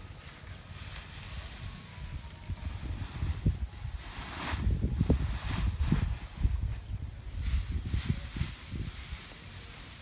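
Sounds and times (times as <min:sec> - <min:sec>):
dry plants rustling: 0:00.0 - 0:10.0
wind buffeting microphone: 0:01.6 - 0:10.0.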